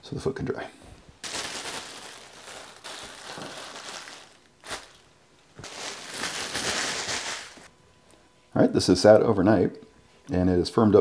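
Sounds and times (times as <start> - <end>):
plastic sheeting rustling: 1.2 - 7.7.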